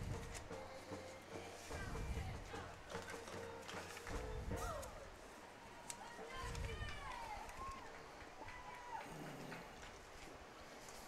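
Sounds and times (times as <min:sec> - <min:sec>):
distant voices calling out: 0:00.0 - 0:11.0.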